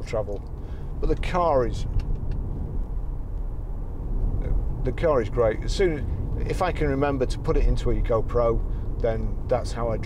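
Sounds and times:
road and engine rumble in car cabin: 0:00.0 - 0:10.0.

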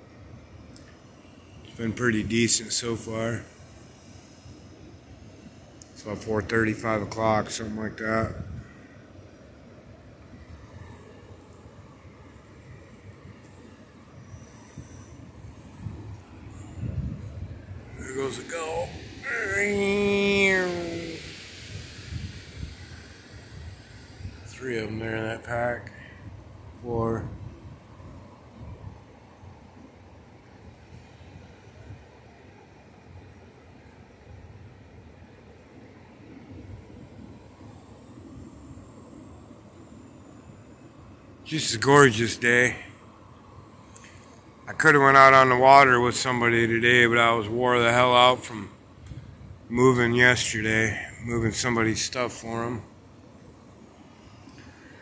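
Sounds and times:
distant ocean surf breaking: 0:00.0 - 0:55.0
wind gusts on microphone: 0:06.0 - 0:33.4, 0:44.4 - 0:55.0
ocean surf on rocky beach: 0:08.9 - 0:21.9.

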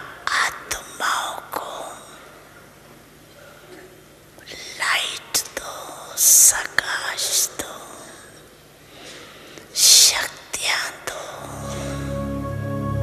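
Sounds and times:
person whispering: 0:00.0 - 0:02.4, 0:04.4 - 0:08.4, 0:09.7 - 0:12.2.

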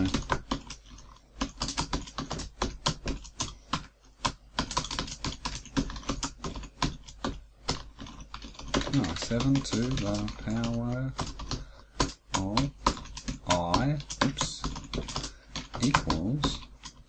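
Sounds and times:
typing on computer keyboard: 0:00.0 - 0:17.0.

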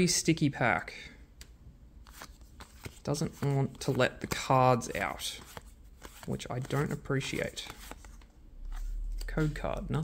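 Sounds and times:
trading cards rustling: 0:02.0 - 0:10.0.

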